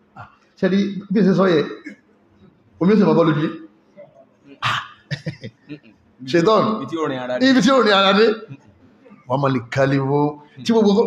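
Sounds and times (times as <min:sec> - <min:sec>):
man laughing: 0:04.6 - 0:06.0.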